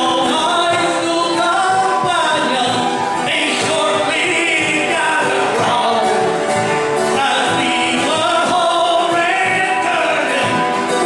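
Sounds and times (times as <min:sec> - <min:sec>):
man singing: 0:00.0 - 0:11.0
strummed acoustic guitar: 0:00.0 - 0:11.0.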